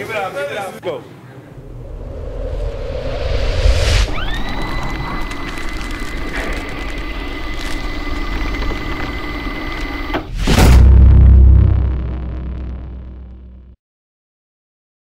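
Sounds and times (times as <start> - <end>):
rising tone: 1.5 - 13.8
quick whoosh: 1.6 - 6.2
loud deep boom: 1.6 - 13.8.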